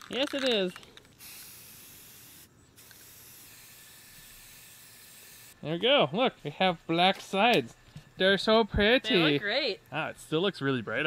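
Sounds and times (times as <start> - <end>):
spray paint can hissing: 0.2 - 5.6.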